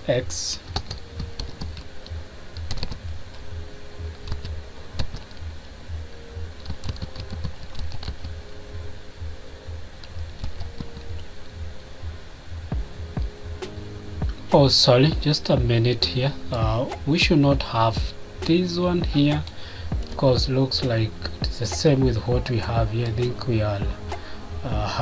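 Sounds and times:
low hum: 0.0 - 25.0
keyboard typing: 0.6 - 3.4, 4.1 - 5.4, 6.6 - 8.4, 10.0 - 11.3.

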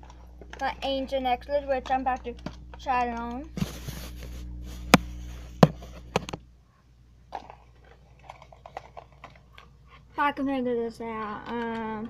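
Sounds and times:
faint crinkling: 0.0 - 10.2
low background hum: 0.0 - 12.0
sharp clicks and taps: 1.8 - 3.6.

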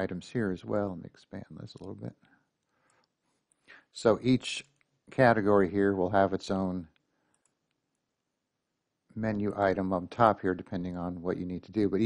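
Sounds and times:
faint mouse click: 1.8 - 3.8, 6.9 - 8.0.

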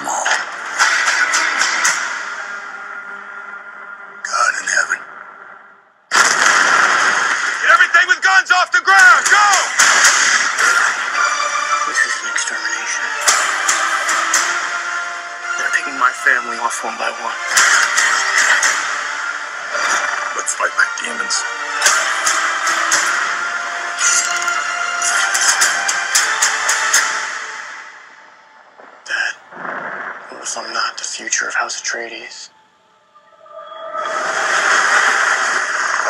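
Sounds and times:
sharp hits: 9.2 - 11.2.

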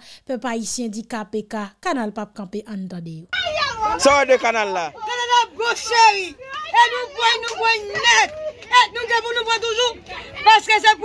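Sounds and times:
woman speaking excitedly: 0.3 - 11.0.

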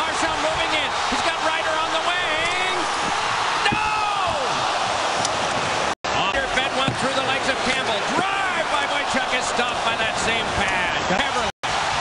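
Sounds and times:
arena crowd roaring: 0.0 - 12.0.

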